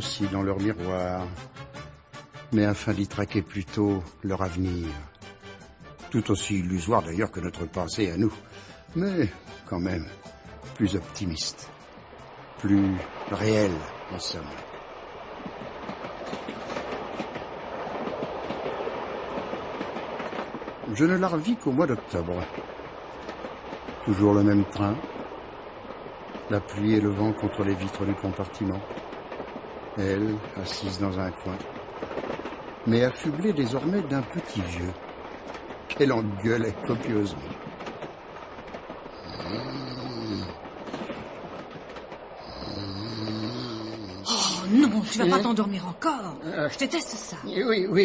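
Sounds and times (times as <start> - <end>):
train rumble: 0.0 - 48.0
wheels clacking over rail joints: 10.8 - 42.8
man snoring: 39.2 - 40.6, 42.4 - 44.3.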